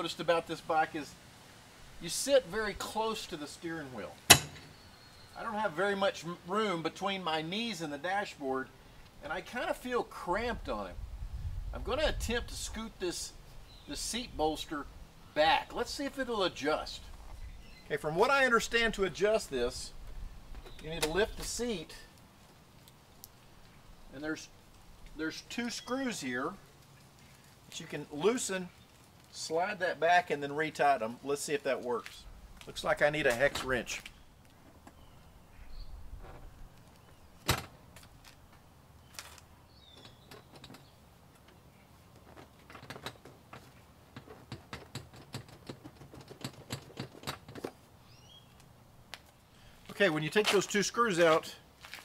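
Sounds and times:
sharp knock: 0:04.3 - 0:04.7.

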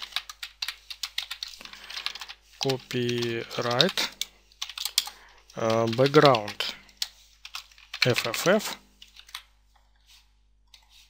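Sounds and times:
computer keyboard typing: 0:00.0 - 0:09.5.

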